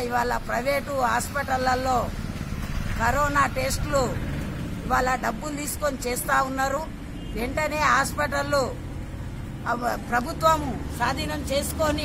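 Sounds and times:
woman speaking: 0.0 - 2.2, 2.9 - 4.2, 4.8 - 8.8, 9.6 - 12.0.

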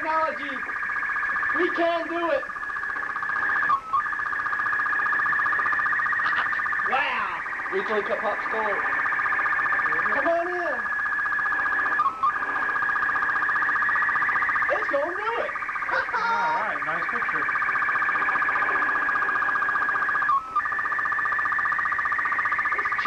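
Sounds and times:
high warbling signal tone: 0.0 - 23.0.

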